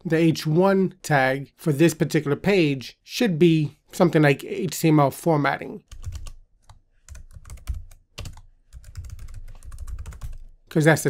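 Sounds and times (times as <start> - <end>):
typing on computer keyboard: 5.9 - 10.5.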